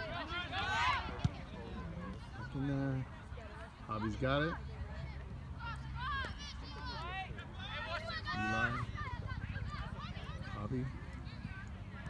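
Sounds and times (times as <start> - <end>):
voices shouting: 0.0 - 1.4.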